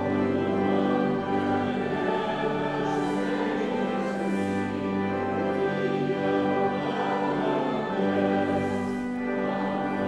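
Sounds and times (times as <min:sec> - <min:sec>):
congregation singing a hymn: 0:00.0 - 0:10.0
organ: 0:00.0 - 0:10.0.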